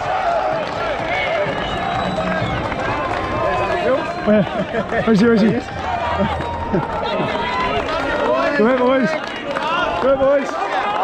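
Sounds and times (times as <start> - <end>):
men calling out and talking: 0.9 - 11.0
low rumble: 1.0 - 8.4.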